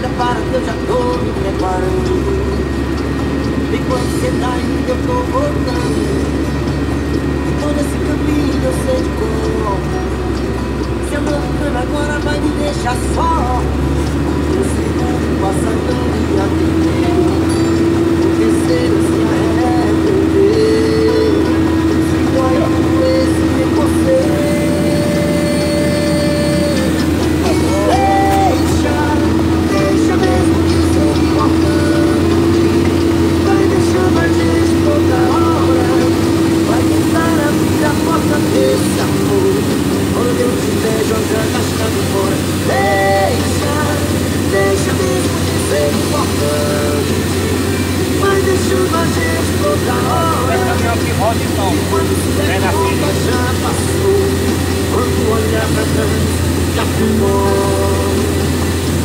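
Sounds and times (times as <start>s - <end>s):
diesel truck engine drone: 0.0s - 59.0s
song on car stereo: 0.0s - 59.0s.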